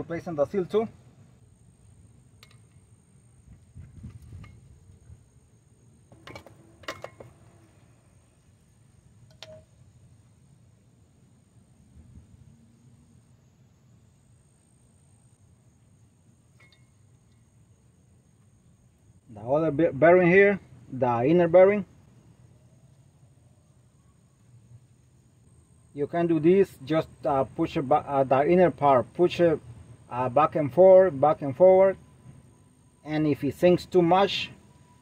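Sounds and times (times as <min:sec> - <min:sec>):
faint metallic clicks and clinks: 0:16.5 - 0:17.5.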